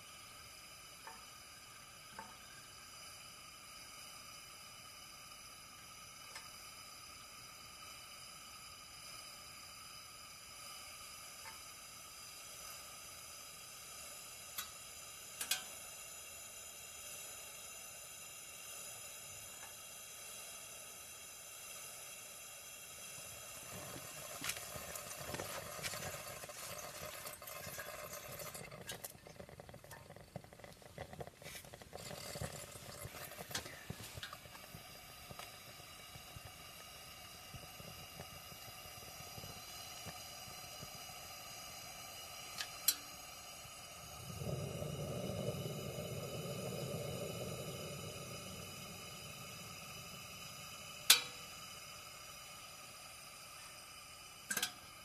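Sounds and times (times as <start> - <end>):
lantern hissing: 0.0 - 55.0.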